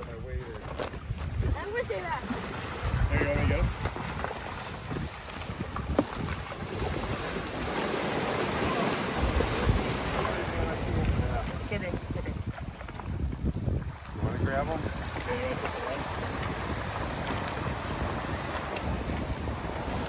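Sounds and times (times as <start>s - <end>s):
wind buffeting microphone: 0.0s - 20.0s
small waves on rocky shore: 0.2s - 20.0s.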